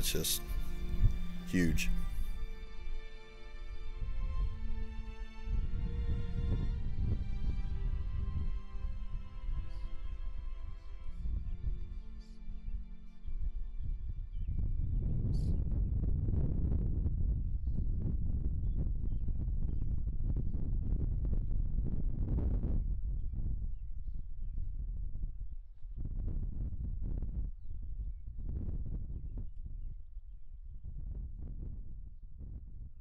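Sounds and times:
wind buffeting microphone: 0.0 - 3.0, 3.6 - 33.0.

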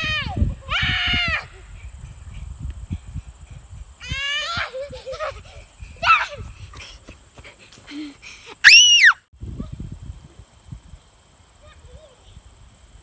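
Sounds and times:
outdoor background: 0.0 - 13.0
child squealing: 8.6 - 9.2.

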